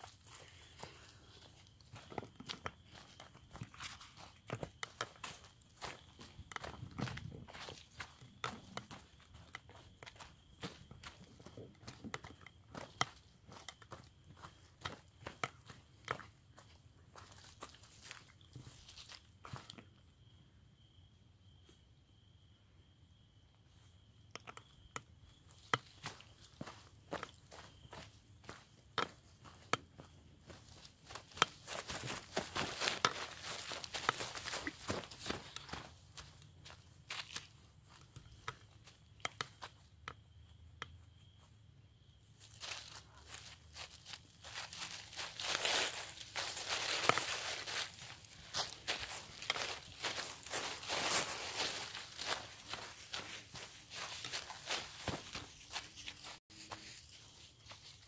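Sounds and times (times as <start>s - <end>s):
footsteps crunching dry leaves: 0.0s - 11.2s, 30.0s - 37.5s, 42.5s - 58.0s.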